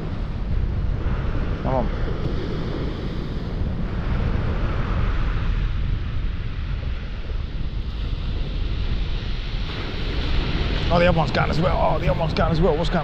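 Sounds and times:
surf washing on shingle beach: 0.0 - 13.0
wind rumble on microphone: 0.0 - 13.0.

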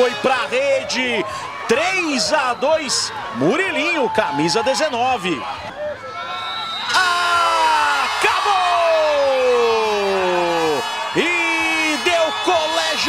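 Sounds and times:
crowd cheering: 0.0 - 13.0
man shouting: 6.9 - 13.0.

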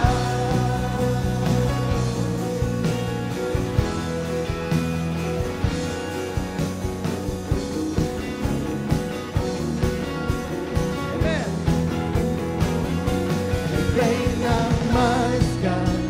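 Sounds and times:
person singing: 0.0 - 2.3, 13.7 - 16.0
drum kit beat: 0.0 - 16.0
electric guitars: 0.0 - 16.0
keyboard: 0.0 - 16.0.

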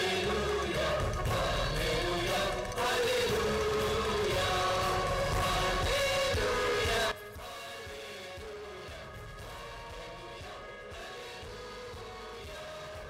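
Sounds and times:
instrumental accompaniment: 0.0 - 13.0
voices singing a hymn: 0.0 - 13.0.

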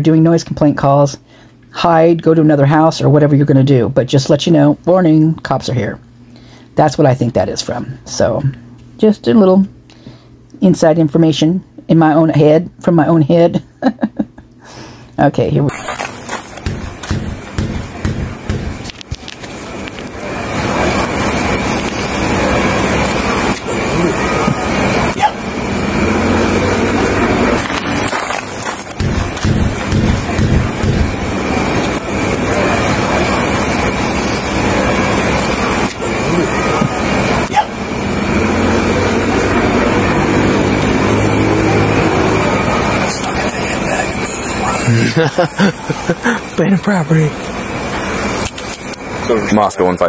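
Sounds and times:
outdoor noise: 15.7 - 50.0
indistinct voices: 19.5 - 46.6.

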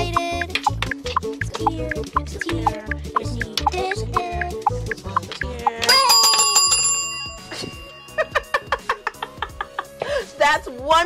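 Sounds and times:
desk call bell ringing: 5.9 - 8.9.

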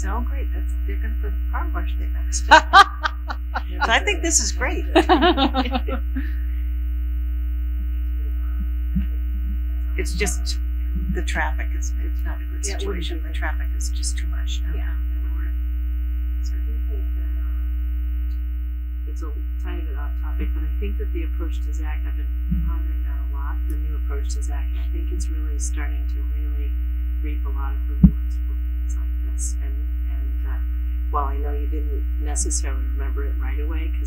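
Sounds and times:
low electrical mains hum: 0.0 - 34.0.

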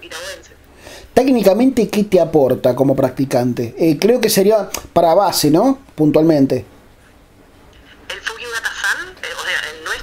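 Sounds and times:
person talking over a phone: 0.0 - 0.6, 7.8 - 10.0.

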